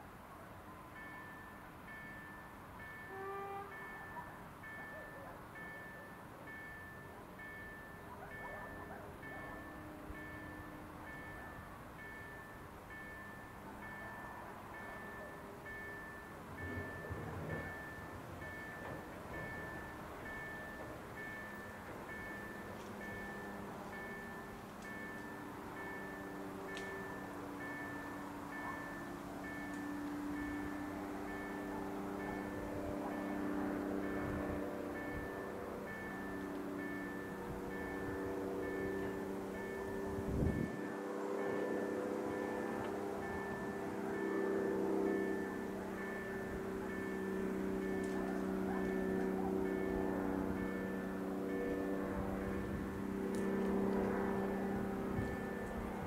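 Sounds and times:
level-crossing warning bell ringing: 0.0 - 56.0
low wavering hum: 5.9 - 56.0.

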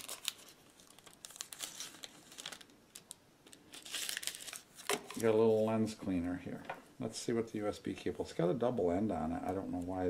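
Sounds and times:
paper packaging crinkling: 0.0 - 5.7.

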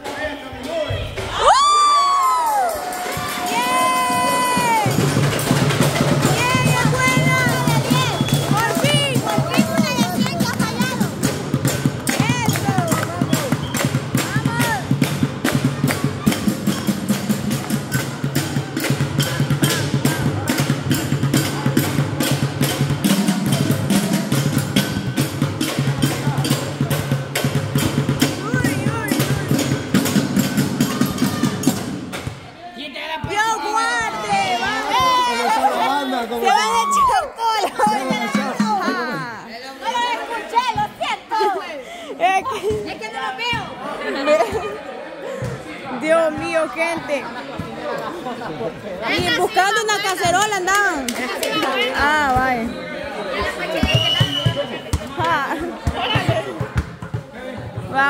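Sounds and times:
crowd whooping and cheering: 1.0 - 5.2, 5.8 - 11.0, 34.1 - 39.5
pots and bucket drummed with sticks: 2.9 - 32.3, 37.8 - 39.4, 53.8 - 58.0.

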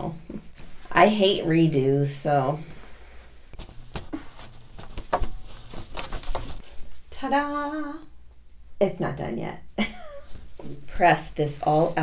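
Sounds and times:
cotton fabric rustling: 0.0 - 7.2, 10.2 - 12.0.

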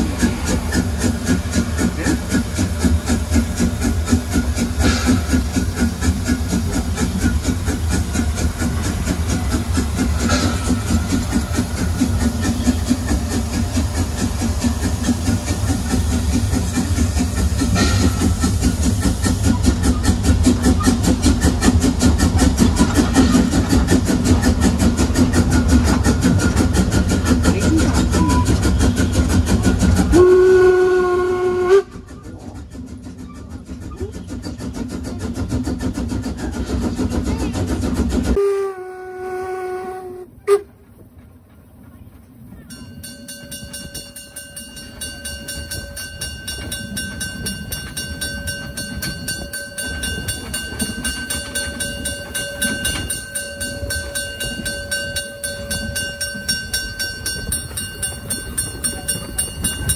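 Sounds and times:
steam locomotive running: 0.0 - 59.9
steam whistle: 30.1 - 32.0, 38.4 - 40.8.

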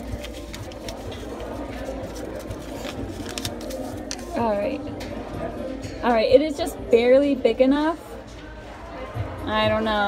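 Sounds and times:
banknote rustling and clicks: 0.0 - 4.4.

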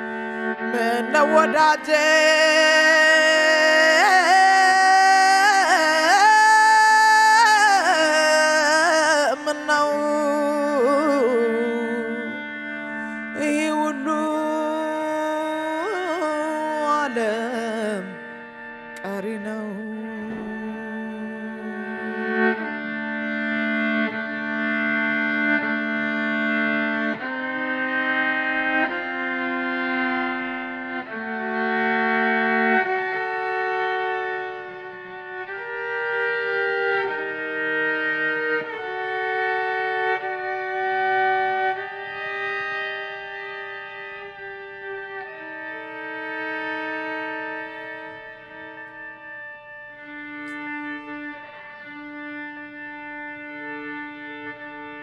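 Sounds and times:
slow violin melody: 0.0 - 55.0.

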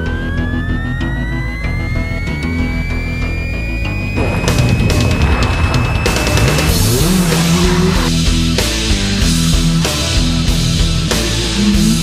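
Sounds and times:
loud rock music: 0.0 - 12.0
car engine revving: 4.1 - 12.0.

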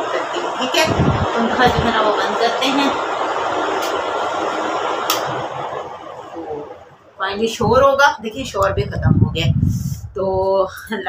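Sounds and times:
electric machine running: 0.0 - 7.1.

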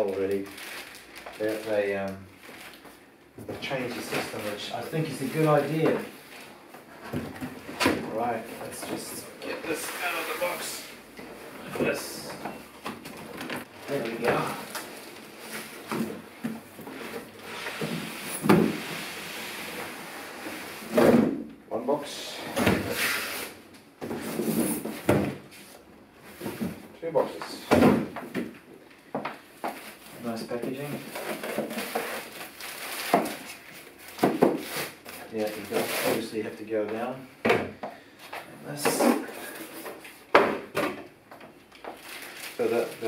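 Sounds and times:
polystyrene packing handled: 0.0 - 3.0, 29.7 - 36.3, 41.8 - 43.0.

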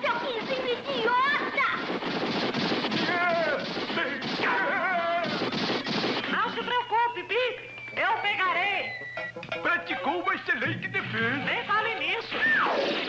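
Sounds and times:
rapid sharp bangs: 0.0 - 6.8, 12.6 - 13.0
wordless yelling voices: 3.0 - 5.4.

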